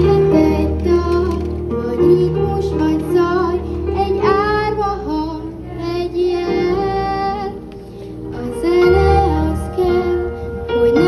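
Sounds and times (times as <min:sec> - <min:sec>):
children singing into microphones: 0:00.0 - 0:11.0
girl singing melody: 0:00.0 - 0:11.0
instrumental accompaniment: 0:00.0 - 0:11.0.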